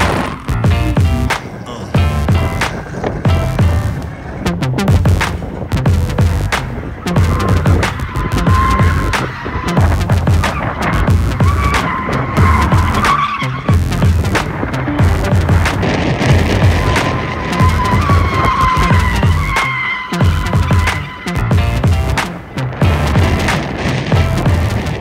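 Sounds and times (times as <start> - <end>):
tyres squealing: 0.0 - 24.8
electronic music with heavy bass: 0.0 - 25.0.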